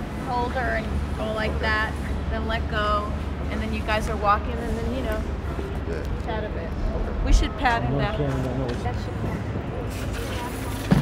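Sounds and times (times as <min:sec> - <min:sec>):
low city rumble: 0:00.0 - 0:11.0.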